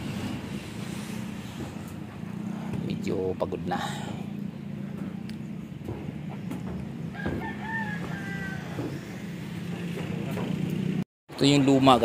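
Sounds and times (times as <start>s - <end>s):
steady low hum: 0.0s - 10.8s
rooster crowing: 7.0s - 9.8s.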